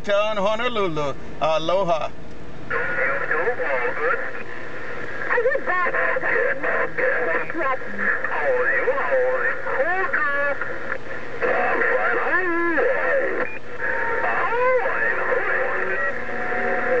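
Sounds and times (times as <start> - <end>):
radio static hiss: 0.0 - 17.0
radio voices through speaker: 2.7 - 17.0.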